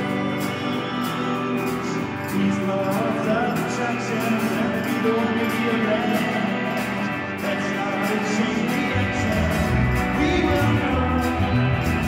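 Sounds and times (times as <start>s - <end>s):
electric guitar chords: 0.0s - 12.0s
person singing: 0.0s - 12.0s.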